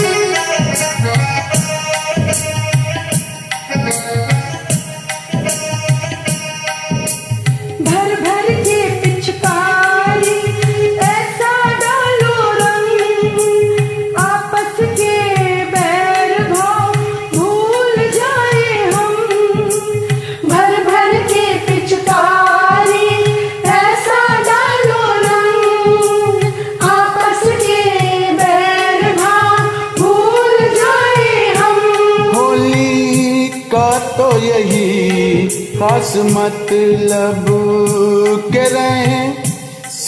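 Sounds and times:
keyboard backing music: 0:00.0 - 0:40.0
steady percussion beat: 0:00.0 - 0:40.0
person singing: 0:07.8 - 0:40.0.

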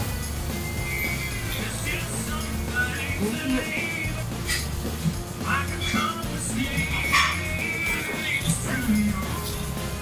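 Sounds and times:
background music with bass line: 0:00.0 - 0:10.0.

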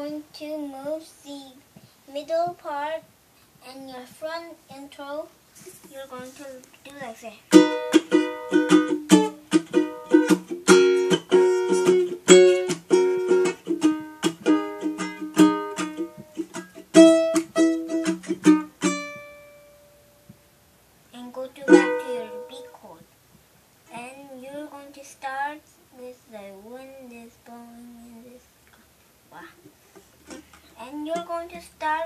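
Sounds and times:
child's voice: 0:00.0 - 0:07.5, 0:21.1 - 0:23.1, 0:23.9 - 0:28.4, 0:29.3 - 0:29.6, 0:30.8 - 0:32.0
ukulele strumming: 0:07.5 - 0:20.4, 0:21.6 - 0:22.8, 0:30.2 - 0:32.0.

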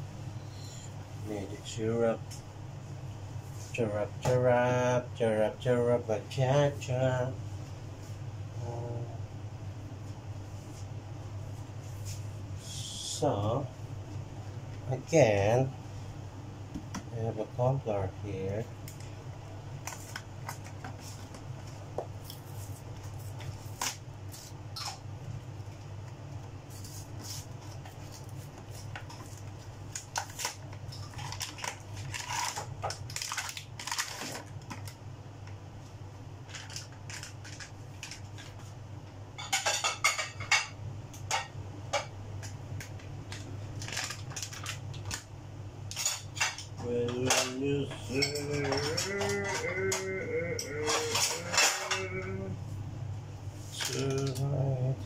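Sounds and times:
steady low hum: 0:00.0 - 0:55.0
utensils and dishes clinking: 0:45.9 - 0:52.3.

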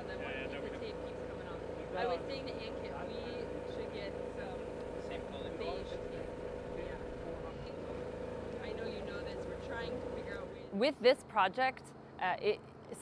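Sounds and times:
faint conversation: 0:00.0 - 0:13.0
mechanical hum: 0:00.0 - 0:13.0.

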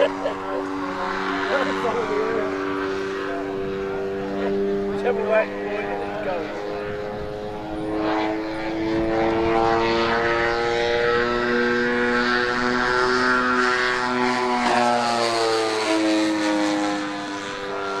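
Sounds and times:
model aeroplane engines droning: 0:00.0 - 0:18.0.

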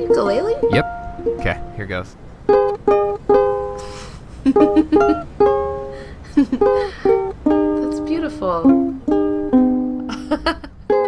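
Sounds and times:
ukulele strumming: 0:00.0 - 0:01.8, 0:02.4 - 0:10.2, 0:10.8 - 0:11.0.

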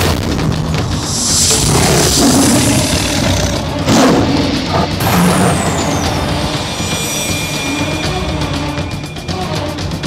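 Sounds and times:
high falling whistle sweep: 0:00.8 - 0:03.6
tiger growls and snarls: 0:00.9 - 0:05.8.

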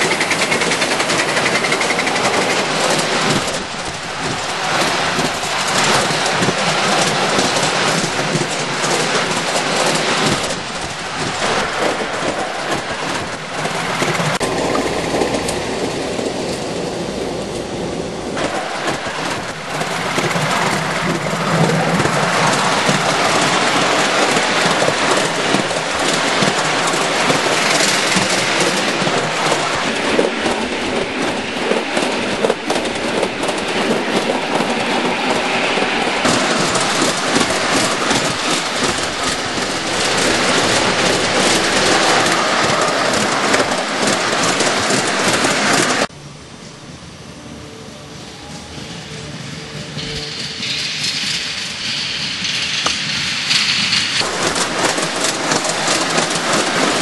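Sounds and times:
miniature train wheels rattling: 0:00.0 - 0:17.8, 0:18.4 - 0:46.1, 0:49.8 - 0:57.0
steady rush of noise: 0:00.0 - 0:57.0.

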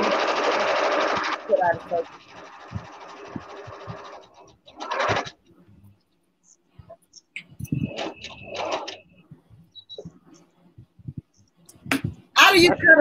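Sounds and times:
sewing machine stitching: 0:00.0 - 0:05.4, 0:07.7 - 0:09.1.

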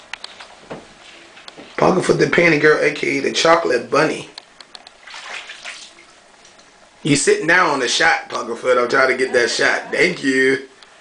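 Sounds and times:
bathwater sloshing and splashing: 0:04.9 - 0:06.6.

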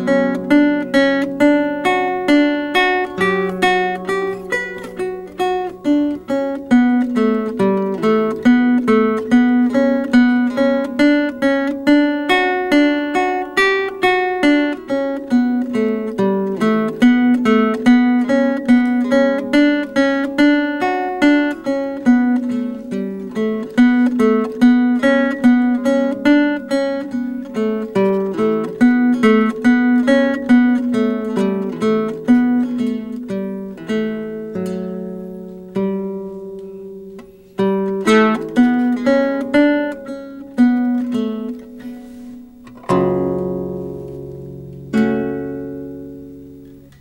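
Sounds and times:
lute and guitar duet: 0:00.0 - 0:47.0.

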